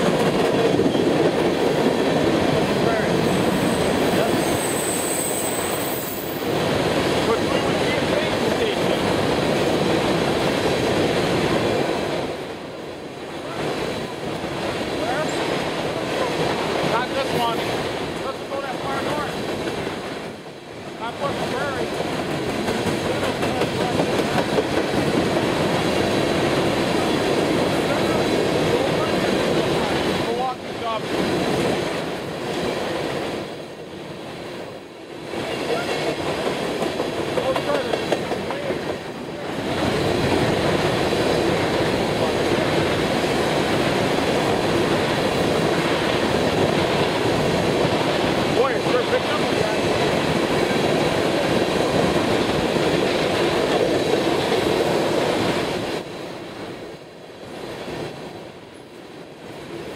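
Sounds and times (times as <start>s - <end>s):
freight train wheels clattering: 0.0s - 11.9s, 21.4s - 30.2s, 36.0s - 55.7s.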